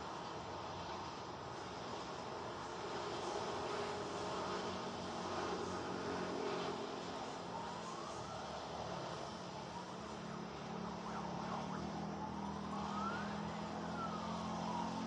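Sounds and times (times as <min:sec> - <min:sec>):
road traffic: 0:00.1 - 0:15.0
emergency siren wailing: 0:05.5 - 0:15.0.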